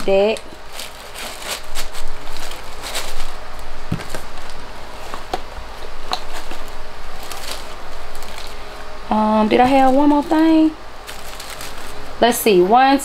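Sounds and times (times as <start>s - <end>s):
shredded paper rustling: 0.0s - 12.2s.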